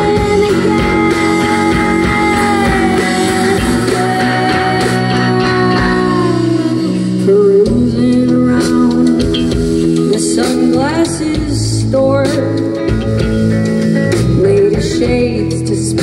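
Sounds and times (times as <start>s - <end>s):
bass guitar: 0.0s - 16.0s
drums and cymbals: 0.0s - 16.0s
electric guitar: 0.0s - 16.0s.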